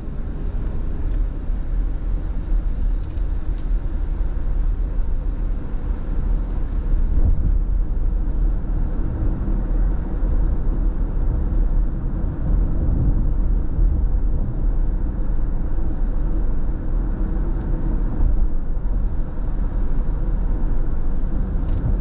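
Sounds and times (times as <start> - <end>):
car cabin road rumble: 0.0 - 22.0.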